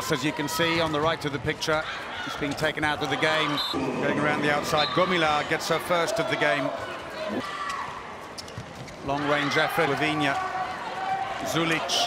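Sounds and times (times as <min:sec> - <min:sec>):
crowd noise in hall: 0:00.0 - 0:12.0.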